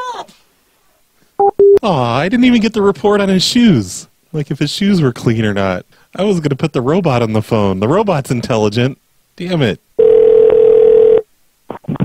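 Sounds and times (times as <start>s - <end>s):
telephone line tone: 1.4s - 1.8s, 10.0s - 11.2s.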